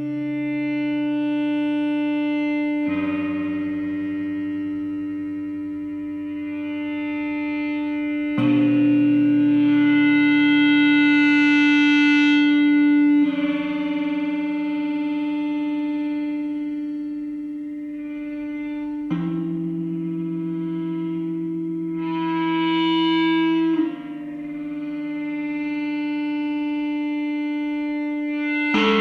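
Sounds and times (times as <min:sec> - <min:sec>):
electric guitar gong-like tone: 0:00.0 - 0:29.0.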